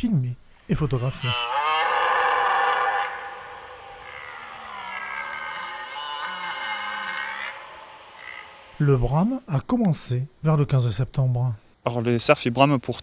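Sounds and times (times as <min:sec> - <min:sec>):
deer stag roaring: 0:01.0 - 0:08.8.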